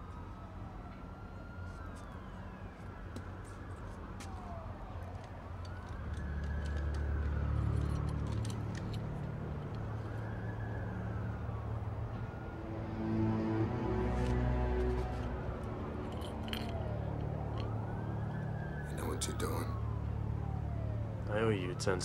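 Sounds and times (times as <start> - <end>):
low sustained film score music: 0.0 - 22.0
police sirens wailing: 0.0 - 22.0.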